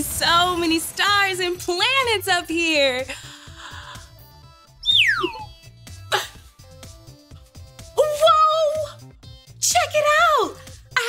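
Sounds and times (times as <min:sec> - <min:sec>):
light background music: 0:00.0 - 0:11.0
falling whistle-like glide: 0:04.8 - 0:05.5.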